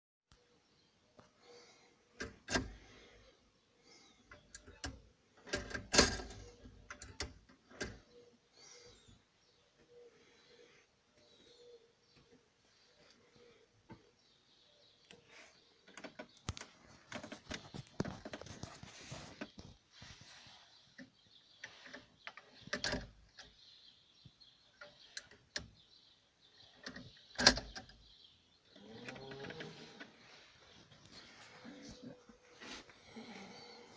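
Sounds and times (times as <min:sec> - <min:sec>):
mechanical clutch clicks and knocks: 0:04.3 - 0:08.0.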